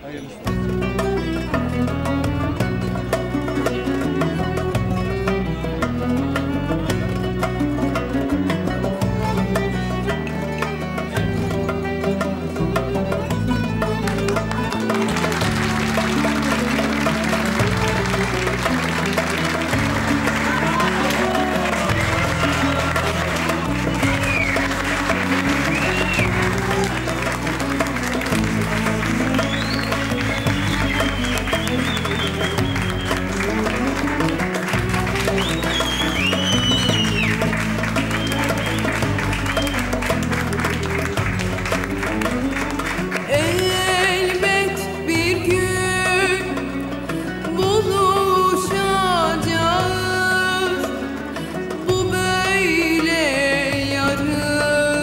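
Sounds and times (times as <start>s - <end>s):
music with moving bass line: 0.5s - 55.0s
audience applauding: 12.0s - 45.0s.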